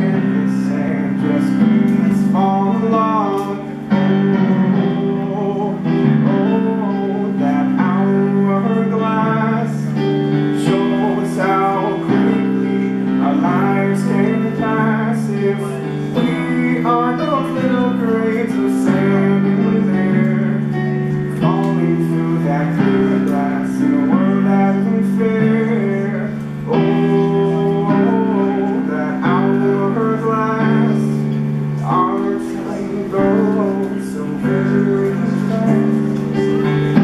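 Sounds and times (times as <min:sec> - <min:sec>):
electric keyboard chords: 0:00.0 - 0:37.0
person singing: 0:00.0 - 0:37.0.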